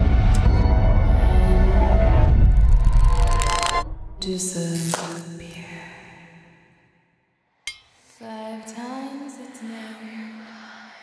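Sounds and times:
dark trailer score: 0:00.0 - 0:07.0.

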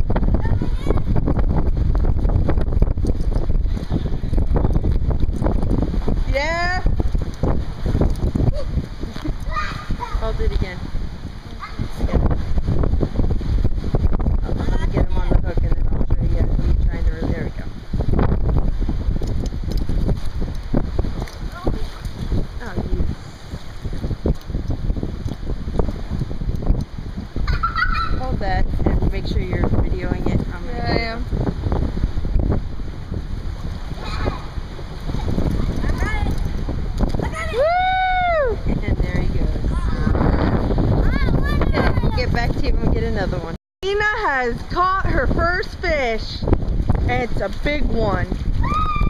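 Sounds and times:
wind buffeting microphone: 0:00.0 - 0:49.0
child's high-pitched voice: 0:00.4 - 0:01.2, 0:09.4 - 0:10.4, 0:11.5 - 0:12.0, 0:27.5 - 0:28.2, 0:34.0 - 0:34.5, 0:35.6 - 0:36.4, 0:37.2 - 0:37.6, 0:39.7 - 0:42.3
splashing in shallow water: 0:17.7 - 0:28.7, 0:30.7 - 0:41.1.

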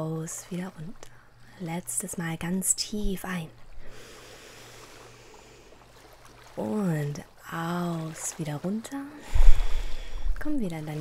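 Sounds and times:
small waves lapping on shore: 0:00.0 - 0:11.0.

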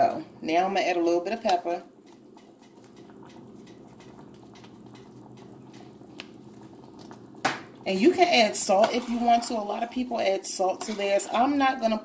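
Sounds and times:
beans simmering with bubbling pops: 0:00.0 - 0:12.0
low steady hum: 0:00.0 - 0:12.0.

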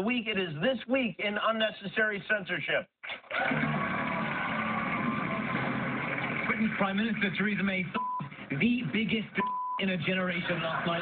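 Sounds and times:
audience applauding and cheering: 0:03.3 - 0:07.5.

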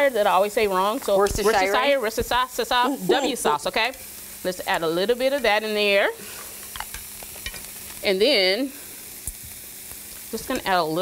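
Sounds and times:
shrimp sizzling in a skillet: 0:00.0 - 0:11.0.

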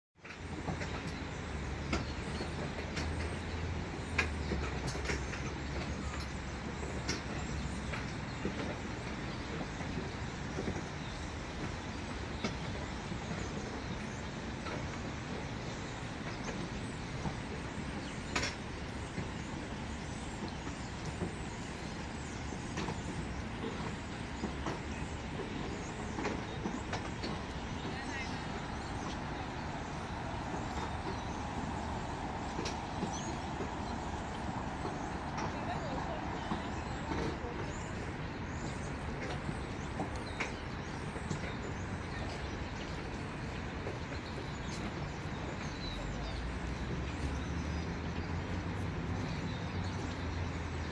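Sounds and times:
distant traffic rumble: 0:00.2 - 0:50.9
low outdoor background noise: 0:00.2 - 0:50.9.

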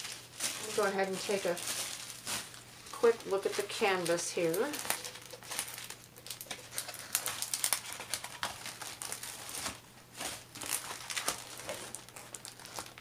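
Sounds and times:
plastic film crinkling: 0:00.0 - 0:13.0.

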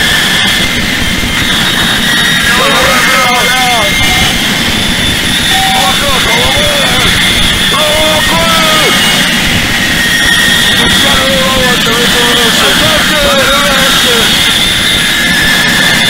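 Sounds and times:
distorted noise wall: 0:00.0 - 0:16.0
high whining tones: 0:00.0 - 0:16.0
pitched wavering sounds: 0:02.3 - 0:14.3.

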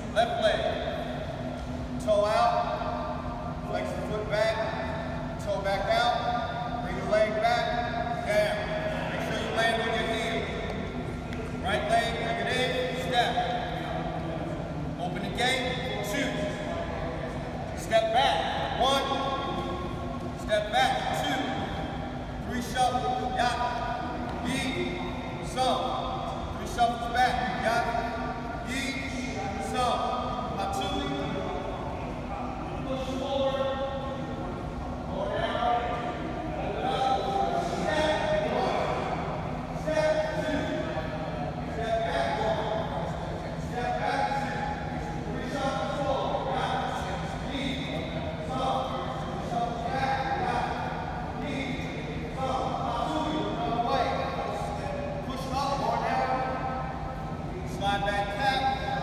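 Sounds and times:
steady low hum: 0:00.0 - 0:59.0
voices echoing in gymnasium: 0:00.0 - 0:59.0.

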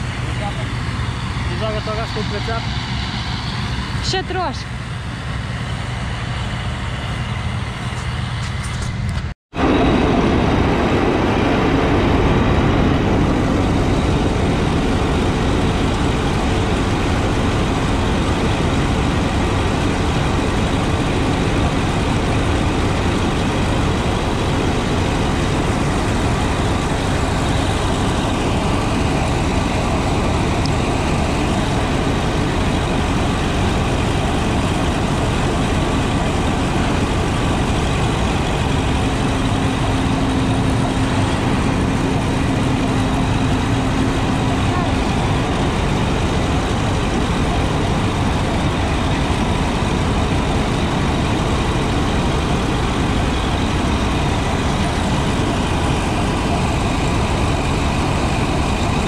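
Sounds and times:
combine harvester running: 0:00.0 - 0:59.0.

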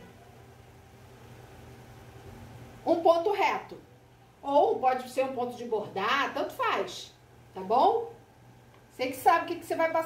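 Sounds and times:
background hiss: 0:00.0 - 0:10.0
faint low hum: 0:00.0 - 0:10.0.

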